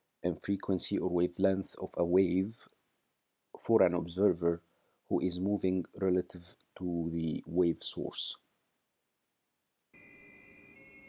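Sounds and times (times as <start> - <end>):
low background hiss: 0.0 - 11.0
faint high-pitched tone: 10.0 - 11.0.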